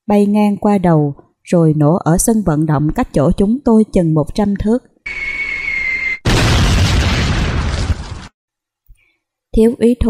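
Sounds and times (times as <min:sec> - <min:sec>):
artillery shell whistle: 0:05.1 - 0:06.3
loud explosion: 0:06.2 - 0:08.3.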